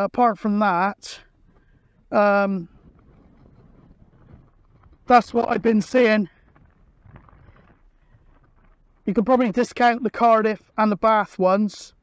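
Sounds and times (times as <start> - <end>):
faint wind rumble on microphone: 1.2 - 9.6.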